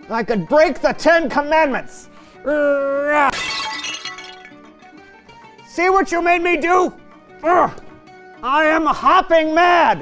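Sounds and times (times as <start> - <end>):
background music: 0.0 - 10.0
stone crash and shatter: 3.3 - 4.6.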